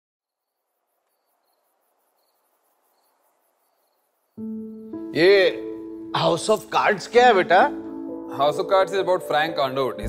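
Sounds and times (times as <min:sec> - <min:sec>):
crickets chirping: 0:00.3 - 0:07.0.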